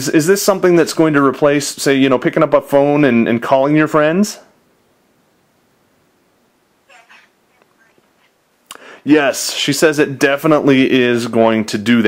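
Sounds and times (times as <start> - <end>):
child speaking through phone speaker: 6.9 - 8.4.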